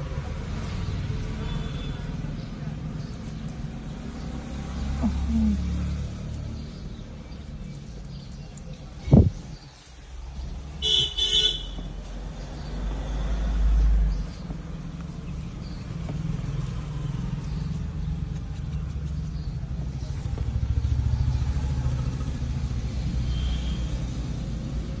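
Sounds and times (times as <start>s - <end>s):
car horn toots: 10.8s - 11.8s.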